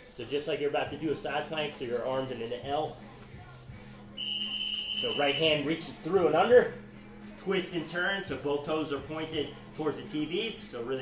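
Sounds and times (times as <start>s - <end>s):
long high electronic beep: 4.2s - 5.5s.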